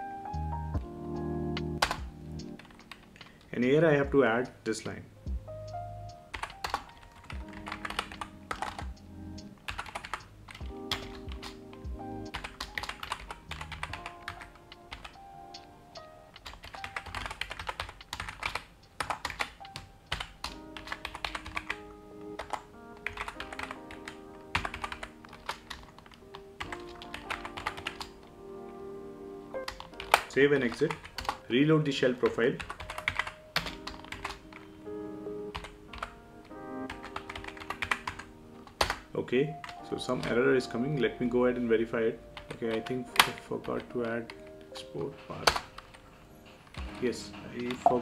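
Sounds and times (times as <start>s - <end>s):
soft background music: 0.0s - 48.0s
computer keyboard typing: 1.6s - 4.1s, 6.3s - 15.7s, 16.3s - 28.2s, 29.6s - 31.5s, 32.2s - 34.7s, 35.5s - 40.4s, 42.4s - 48.0s.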